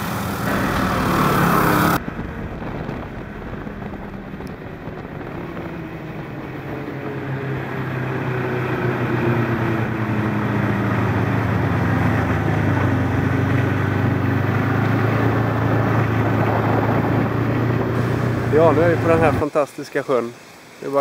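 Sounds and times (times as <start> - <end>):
snowmobile engine running: 0.0 - 19.6.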